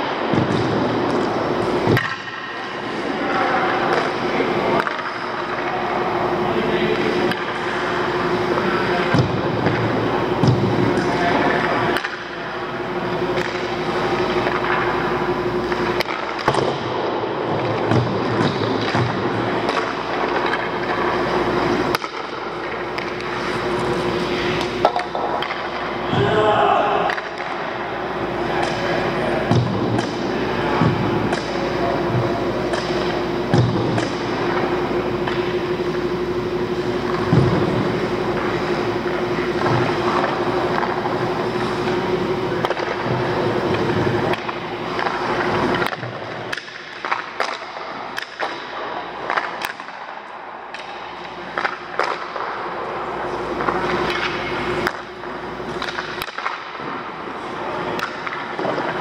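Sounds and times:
steady hum: 0.0s - 59.0s
skate blades scraping ice: 19.6s - 25.7s.

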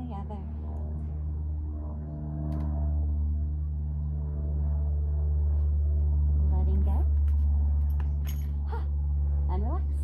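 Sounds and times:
low drone of held tones: 0.0s - 10.0s.

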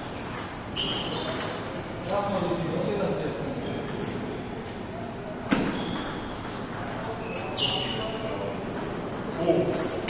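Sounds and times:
faint ping pong clicks: 3.6s - 4.9s, 5.5s - 10.0s.

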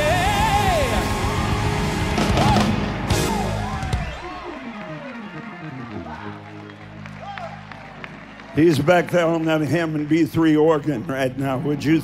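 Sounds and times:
gospel band playing: 0.0s - 12.0s.

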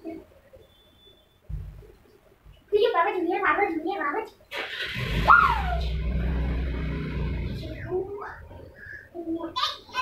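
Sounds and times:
steady low hum: 5.0s - 9.6s
voice rising and falling in pitch: 5.1s - 8.4s.

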